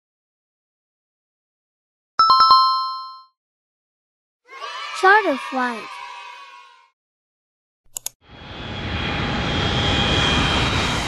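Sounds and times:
jet engine rushing with high whine: 8.3s - 11.0s.

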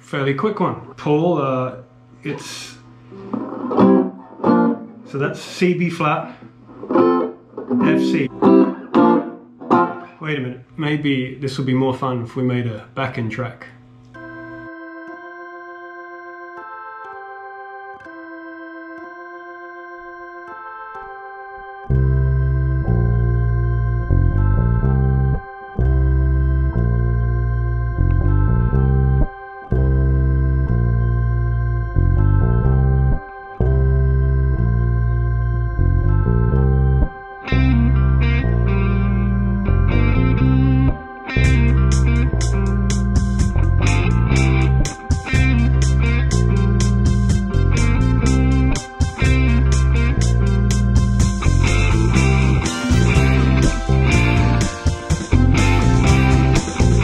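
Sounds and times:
electronic organ chords: 1.1s - 12.4s, 13.2s - 57.0s
electric guitar rhythmic chords: 1.9s - 10.7s, 13.8s - 57.0s
bass guitar line: 2.5s - 5.3s, 6.5s - 10.4s, 21.7s - 57.0s.

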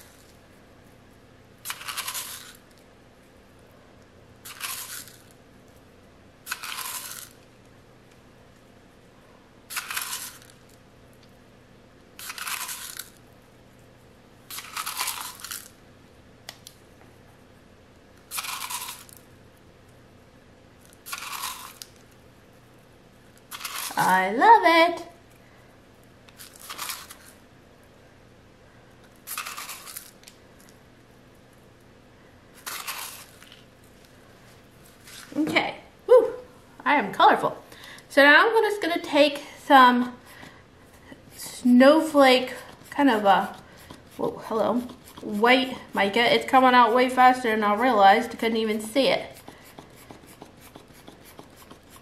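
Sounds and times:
salt grains rustling: 1.6s - 2.6s, 4.4s - 5.3s, 6.5s - 7.4s, 12.2s - 13.2s, 14.5s - 15.7s, 18.3s - 19.2s, 21.0s - 22.0s, 23.5s - 24.0s, 29.2s - 30.2s, 32.6s - 33.6s.

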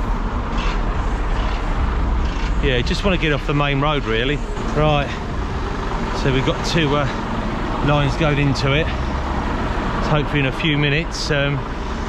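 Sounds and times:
cars passing: 0.0s - 12.0s
idling truck engines: 0.0s - 12.0s.

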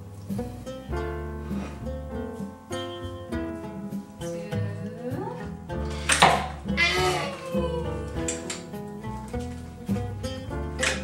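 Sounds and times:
guitar music: 0.0s - 11.0s
toddler squealing: 6.7s - 8.0s.

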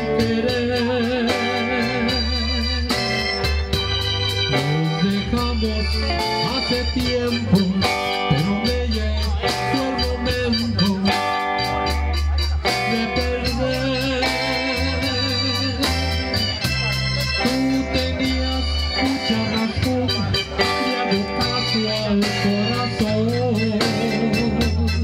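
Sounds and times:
bass: 0.0s - 25.0s
drum kit steady beat: 0.0s - 25.0s
electric guitar: 0.0s - 25.0s
organ: 0.0s - 25.0s.

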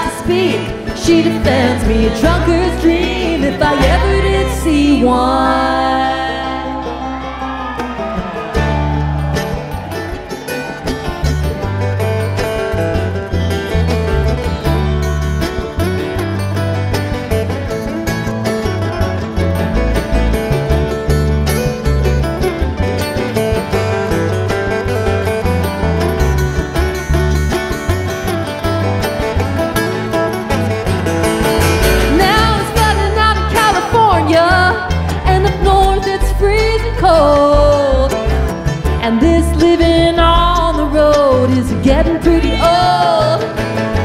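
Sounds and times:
acoustic guitar lead: 0.0s - 44.0s
banjo: 0.0s - 44.0s
strummed acoustic guitars: 0.0s - 44.0s
upright bass: 0.0s - 44.0s.

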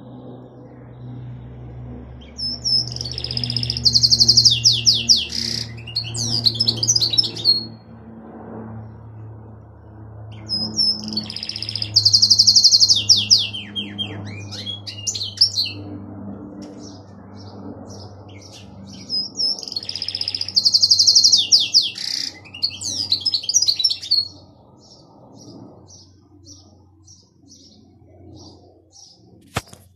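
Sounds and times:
canary chirps: 2.2s - 7.8s, 10.3s - 15.9s, 18.0s - 24.4s
canary singing: 2.2s - 7.8s, 10.3s - 15.9s, 16.8s - 25.0s.

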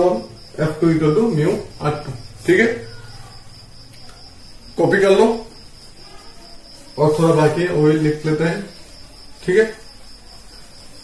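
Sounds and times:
man speaking: 7.0s - 8.7s, 9.4s - 9.8s.

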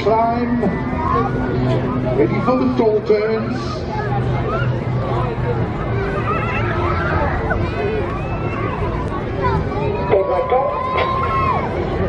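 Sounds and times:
crowd chattering: 0.0s - 12.0s
steady low hum: 0.0s - 12.0s.

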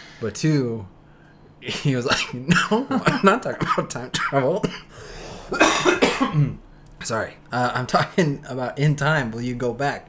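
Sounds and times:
man coughing: 2.1s - 6.6s.

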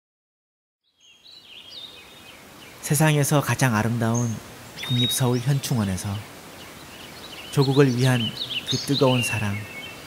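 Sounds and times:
birds chirping: 0.8s - 10.0s
faint outdoor hiss: 0.8s - 10.0s.

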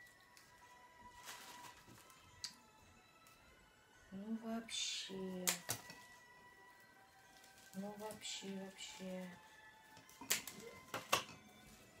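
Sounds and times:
scissors snipping: 5.4s - 6.0s, 10.1s - 11.3s.

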